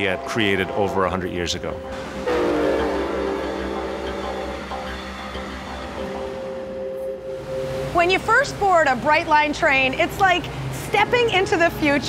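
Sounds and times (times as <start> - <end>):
train horn chord: 0.0 - 8.2.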